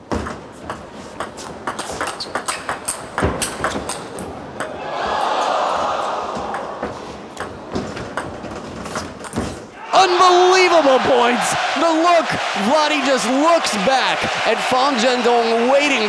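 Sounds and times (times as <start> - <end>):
crowd noise: 4.1 - 16.0.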